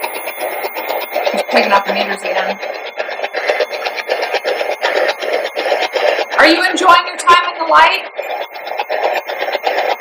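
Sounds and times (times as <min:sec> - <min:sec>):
radio static and broadcast snippets: 0:00.0 - 0:10.0.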